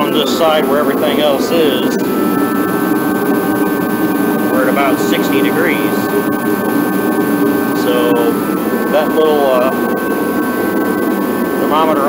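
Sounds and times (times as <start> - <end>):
faint steady tones: 0.0 - 12.0
heater fan and burner rushing: 0.0 - 12.0.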